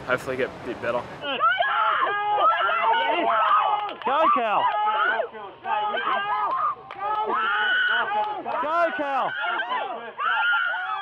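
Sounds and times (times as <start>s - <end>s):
spectators shouting encouragement: 1.2s - 11.0s.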